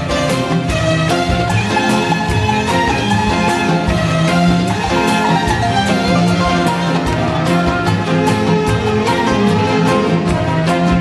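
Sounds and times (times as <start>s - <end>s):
orchestra with strings: 0.0s - 11.0s
steady beat: 0.0s - 11.0s
violins: 0.0s - 11.0s.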